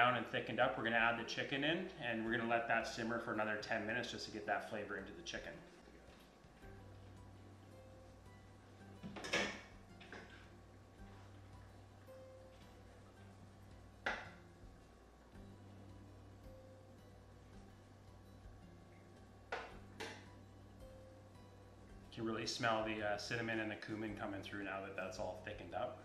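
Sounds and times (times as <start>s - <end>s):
faint background music: 0.0s - 26.0s
steady low hum: 0.0s - 26.0s.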